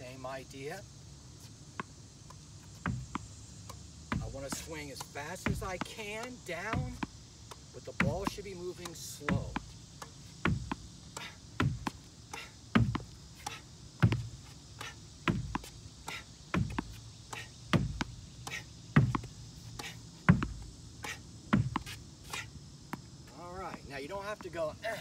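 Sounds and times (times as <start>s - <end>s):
ball bouncing on hard court: 2.7s - 10.9s, 11.6s - 12.0s, 12.7s - 13.1s, 14.0s - 14.3s, 15.2s - 15.7s, 16.5s - 17.0s, 17.7s - 18.2s, 19.0s - 19.3s, 20.3s - 20.7s, 21.5s - 22.0s
tennis racket hits: 2.8s - 15.7s
ball knocking against wall: 12.7s - 13.1s.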